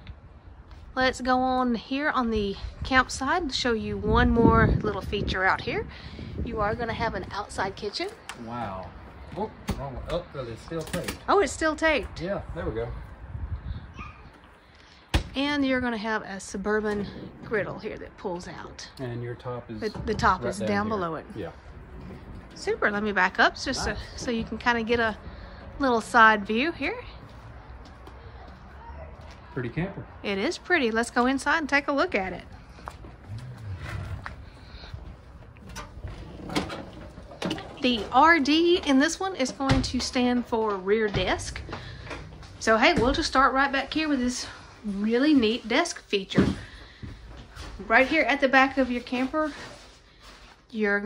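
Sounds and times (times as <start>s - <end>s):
wind rumble on microphone: 2.0s - 8.0s, 11.4s - 14.5s, 16.8s - 18.2s, 19.4s - 25.8s
footsteps on entry steps: 32.5s - 36.4s, 37.0s - 44.3s, 46.3s - 49.8s
trailer door unlatching and opening: 35.5s - 39.0s.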